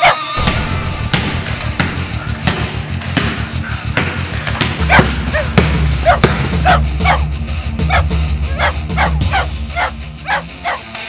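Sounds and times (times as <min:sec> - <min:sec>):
dog barking: 0:00.0 - 0:00.3, 0:04.9 - 0:07.3, 0:07.9 - 0:10.9
background music with low beat: 0:00.3 - 0:11.0.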